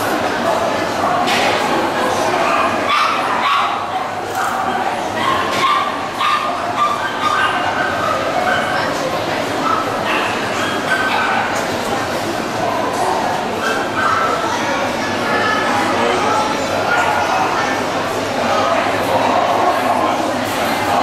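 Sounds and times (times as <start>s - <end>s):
dog barking: 2.5s - 3.9s, 5.2s - 8.9s, 9.6s - 11.6s.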